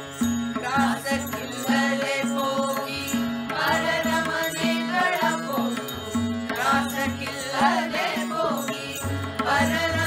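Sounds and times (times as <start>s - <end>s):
harmonium chords: 0.0s - 10.0s
tabla rhythm: 0.0s - 10.0s
group singing devotional song: 0.6s - 10.0s.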